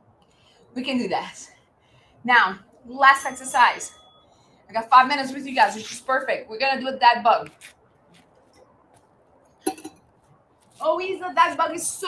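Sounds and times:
bottle clinking on hard floor: 9.7 - 10.0.

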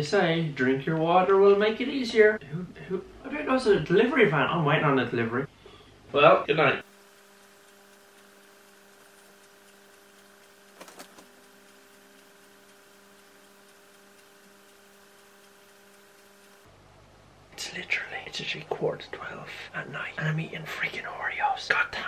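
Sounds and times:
faint steady hum: 0.0 - 22.0
soft clicks: 6.8 - 16.7.

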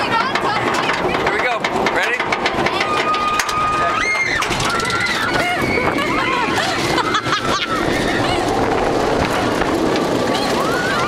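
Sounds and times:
people talking: 0.0 - 3.0
background hubbub: 0.0 - 11.0.

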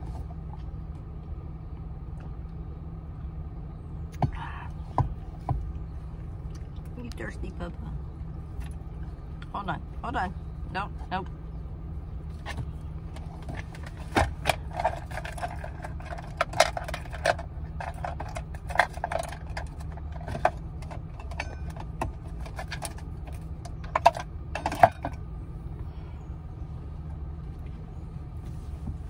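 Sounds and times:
engine idling: 0.0 - 29.0
clicks and knocks inside van: 4.1 - 7.3, 10.8 - 25.3, 27.1 - 29.0.

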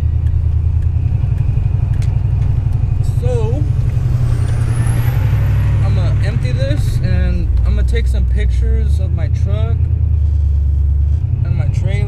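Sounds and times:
truck engine and road noise: 0.0 - 12.0.

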